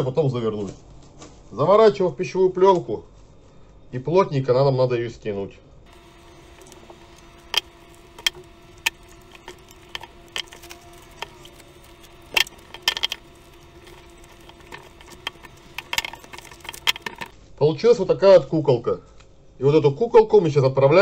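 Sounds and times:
cling film crackling: 5.9 - 17.3.

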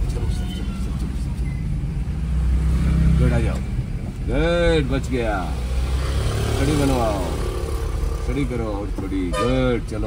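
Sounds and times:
engine and road rumble: 0.0 - 10.0.

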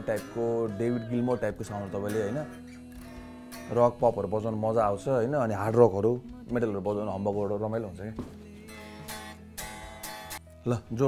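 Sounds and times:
electric guitar strummed: 0.0 - 5.4, 8.6 - 10.5.

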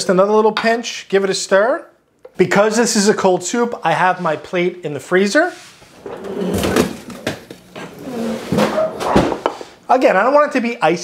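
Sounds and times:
drawer pushed shut: 8.3 - 9.6.

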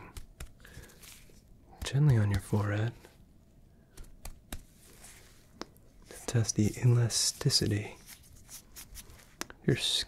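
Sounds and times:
gloved fingertips tapping: 0.0 - 2.9, 3.9 - 4.9.

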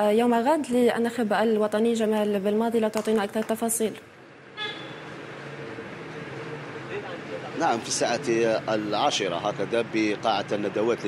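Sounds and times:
short horn toot: 4.6 - 5.1.

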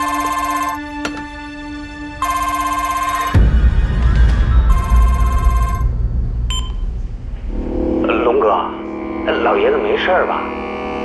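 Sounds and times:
mobile phone ringing: 0.0 - 0.9, 2.2 - 3.4, 4.7 - 5.9
low rumble: 3.4 - 11.0
short beep: 6.5 - 6.8.

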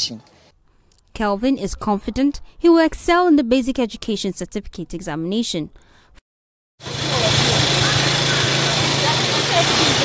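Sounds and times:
car engine running: 6.8 - 10.0.

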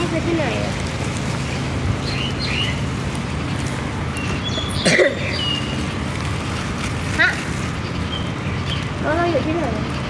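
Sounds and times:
rain: 0.0 - 10.0.

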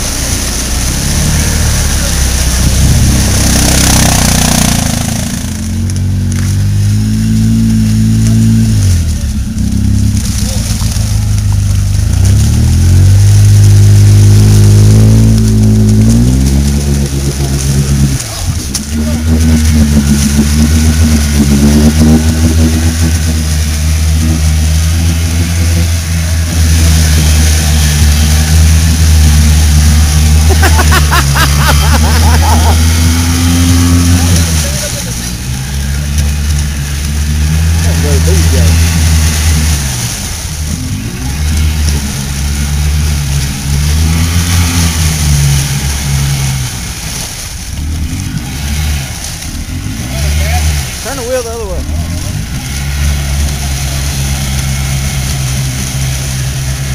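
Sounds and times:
engine revving in mud: 0.0 - 56.9.

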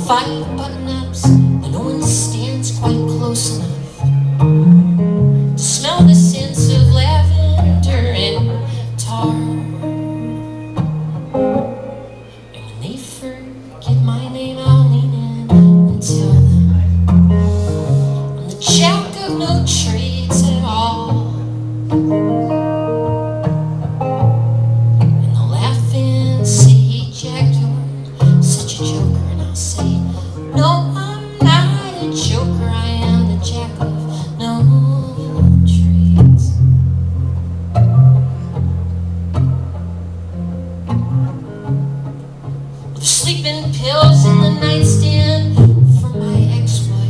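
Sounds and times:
acoustic guitar chords strummed: 0.0 - 47.0.

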